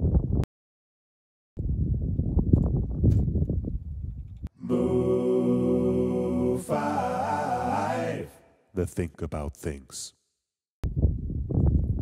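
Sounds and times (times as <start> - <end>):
wind buffeting microphone: 1.6 - 4.5, 10.8 - 12.0.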